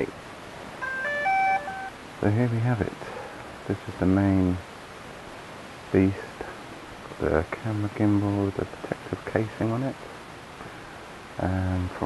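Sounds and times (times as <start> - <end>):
drone electronic beep tune: 0.8 - 1.9.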